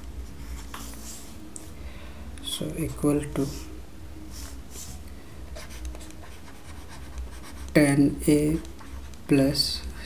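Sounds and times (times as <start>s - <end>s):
low steady hum: 0.0s - 10.0s
stylus scratching on tablet: 4.4s - 9.4s.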